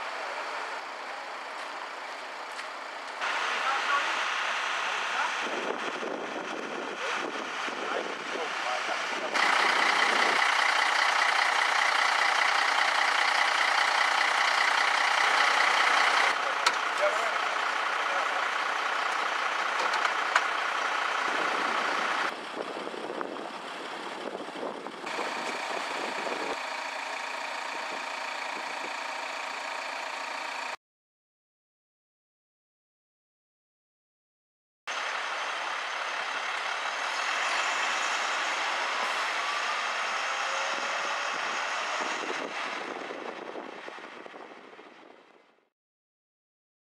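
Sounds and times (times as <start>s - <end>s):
diesel engines idling: 0.0s - 30.8s, 34.9s - 45.4s.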